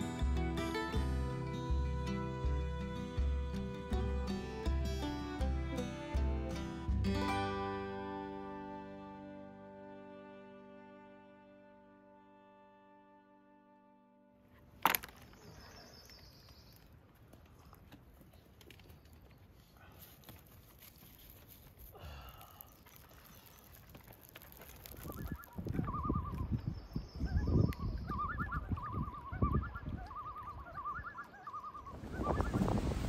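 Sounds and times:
wind rumble on microphone: 24.9 - 31.1, 31.8 - 33.0
bird calling: 25.0 - 33.0.

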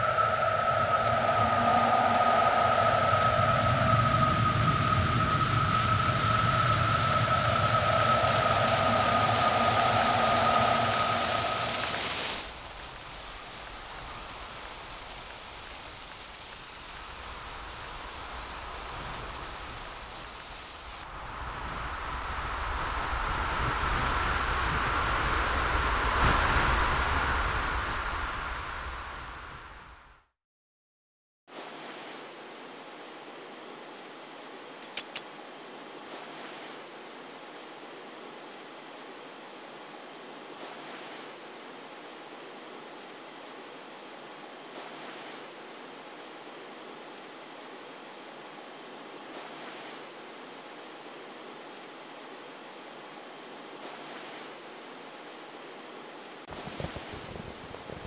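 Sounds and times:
held high tone: 0.0 - 12.2
steady hissing noise: 0.0 - 30.0, 31.5 - 58.0.

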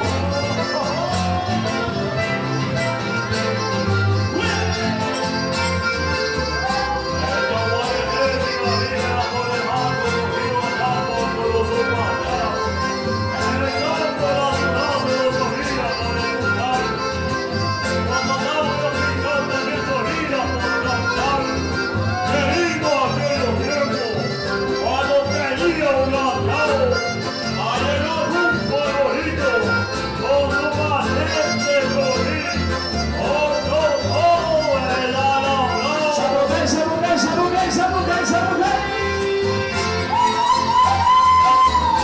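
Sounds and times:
accordions playing: 0.0 - 42.0
bass rhythm: 0.0 - 42.0
man singing: 0.0 - 42.0.

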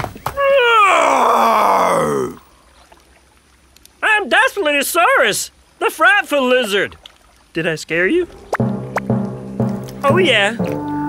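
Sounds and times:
cartoon dinosaur roar: 0.4 - 2.4.

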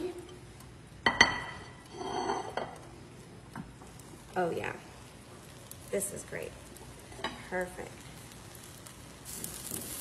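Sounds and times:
plate clattering: 1.1 - 2.8
plate clinking on counter: 1.1 - 2.8.

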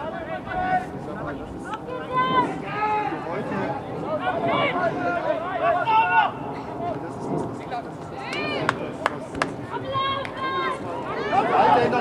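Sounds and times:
people shouting: 1.9 - 6.5, 9.7 - 12.0.

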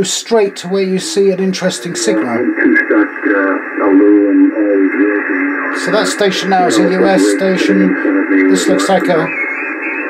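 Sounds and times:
thin radio voice: 1.8 - 10.0.

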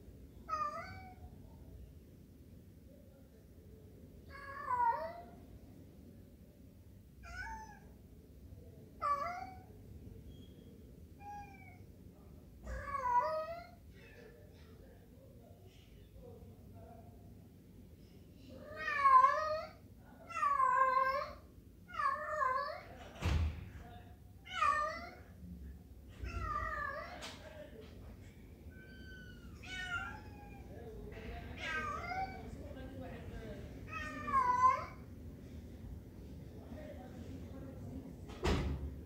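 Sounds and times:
cat meowing: 0.5 - 1.2, 7.2 - 7.9, 11.2 - 11.8, 12.6 - 13.8, 18.6 - 22.9, 24.4 - 25.3, 26.1 - 27.2, 28.7 - 30.7, 31.6 - 32.4, 33.9 - 35.0.

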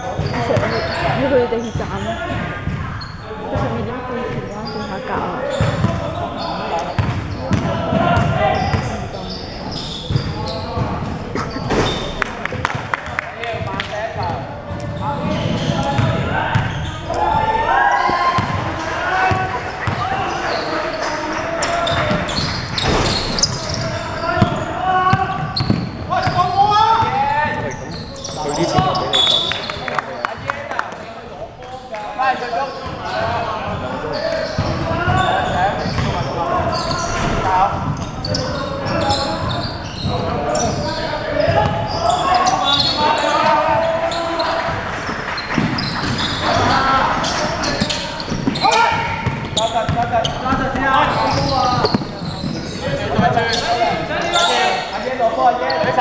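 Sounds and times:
players calling out: 0.0 - 30.0, 32.5 - 56.0
basketball bouncing on gym floor: 13.6 - 16.8, 24.4 - 26.4, 45.6 - 53.4.

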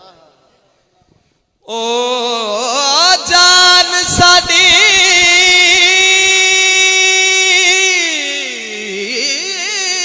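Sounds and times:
man singing long note: 1.6 - 10.0.

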